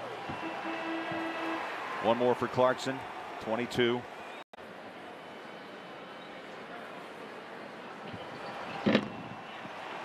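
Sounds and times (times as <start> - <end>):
sparse crowd noise: 0.0 - 10.0.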